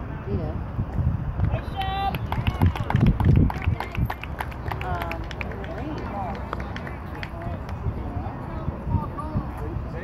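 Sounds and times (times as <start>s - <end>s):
wind rumble on microphone: 0.0s - 5.8s, 7.2s - 10.0s
spectators calling out and chatting: 0.0s - 10.0s.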